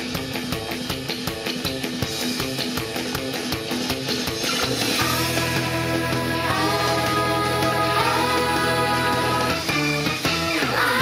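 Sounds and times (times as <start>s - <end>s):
electric guitar: 0.0s - 11.0s
fast drum beats: 0.0s - 11.0s
upbeat pop music: 2.2s - 11.0s.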